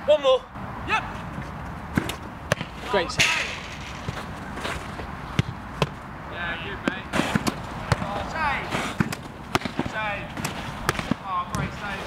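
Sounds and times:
football being kicked: 5.4s - 6.0s.

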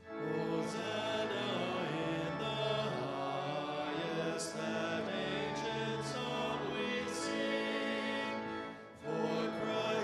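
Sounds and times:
congregation singing a hymn: 0.0s - 10.0s
sustained accompanying chords: 0.0s - 10.0s.

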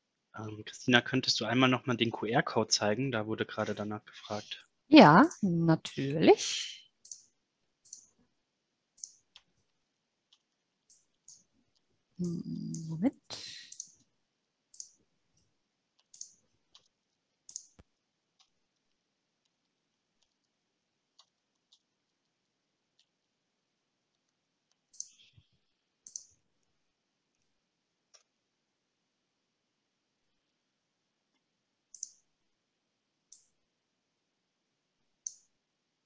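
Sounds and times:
computer mouse clicks: 7.0s - 8.2s, 9.0s - 13.0s, 13.7s - 14.1s, 14.7s - 15.0s, 16.0s - 22.4s, 24.1s - 26.7s, 28.1s - 28.4s, 31.3s - 32.3s, 33.3s - 33.6s, 35.2s - 35.6s.

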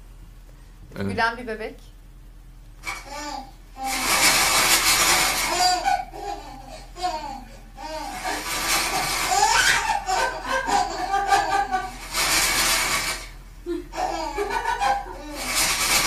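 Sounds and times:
baby laughing: 2.9s - 12.3s, 13.7s - 16.0s.

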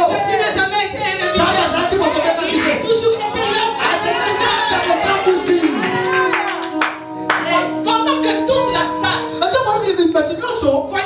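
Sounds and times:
worship singing: 0.0s - 11.0s
hand-clapping: 3.8s - 7.5s.

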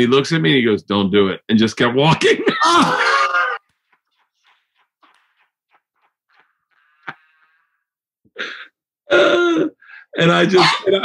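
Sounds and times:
wheezing laughter: 2.6s - 3.6s.

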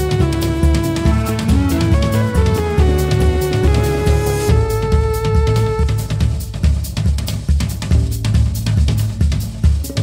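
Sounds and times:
drum kit groove: 0.0s - 10.0s.

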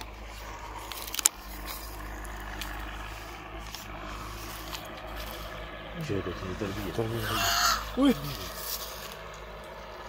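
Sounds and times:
crow cawing: 6.8s - 8.6s.

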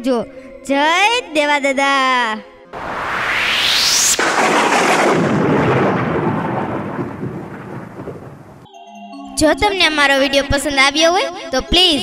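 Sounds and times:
thunder-like boom: 2.8s - 8.7s.

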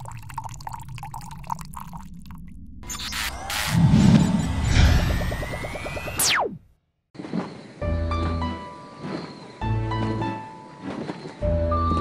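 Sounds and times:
liquid pouring and bubbling: 0.0s - 3.4s.

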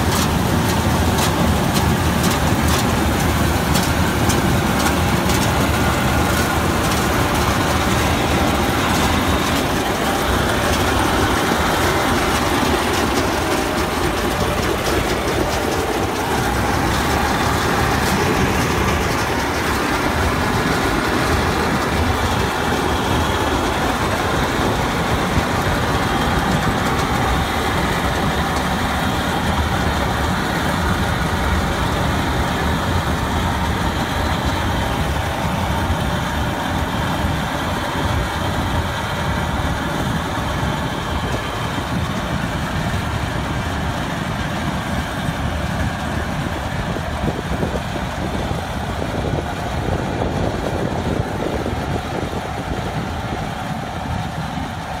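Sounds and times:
combine harvester running: 0.0s - 55.0s.

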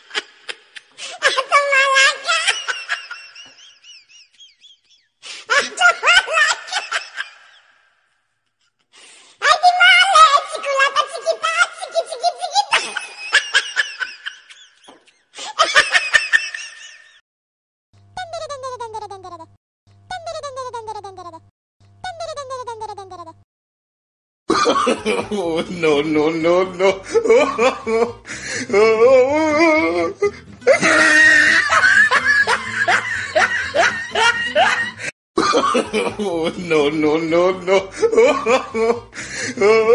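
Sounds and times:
high-pitched laughter: 0.0s - 4.9s, 5.5s - 7.7s, 10.9s - 17.2s, 18.2s - 19.5s, 20.1s - 23.4s, 29.4s - 36.2s, 37.9s - 39.0s
person snickering: 30.7s - 36.2s.

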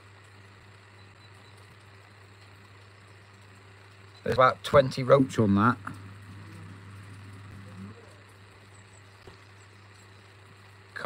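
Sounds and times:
steady low hum: 0.0s - 11.0s
faint far-off voices: 5.7s - 8.4s.

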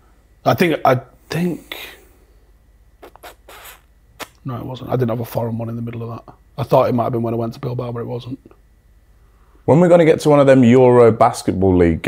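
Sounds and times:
people talking: 0.5s - 2.0s, 4.4s - 8.5s, 9.7s - 12.0s.

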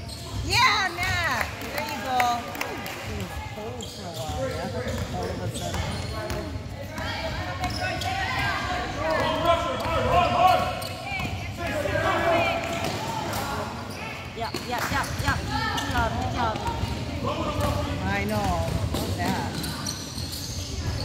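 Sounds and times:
voices of players and spectators: 0.0s - 21.0s.

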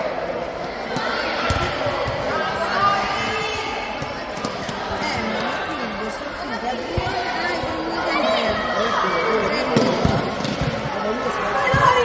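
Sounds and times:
many overlapping voices: 0.0s - 12.0s
ball kicks and bounces: 1.0s - 2.2s, 9.7s - 10.9s.

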